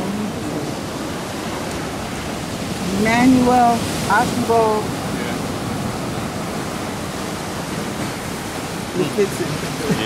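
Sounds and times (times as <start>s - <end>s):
ocean surf breaking: 0.0s - 10.0s.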